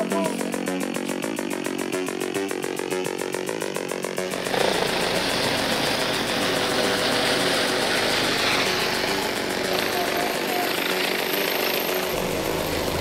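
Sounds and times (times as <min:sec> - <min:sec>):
helicopter flying overhead: 0:00.0 - 0:13.0.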